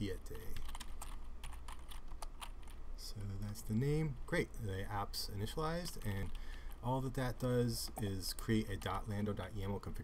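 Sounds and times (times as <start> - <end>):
computer keyboard typing: 0.3 - 2.8, 5.8 - 6.8.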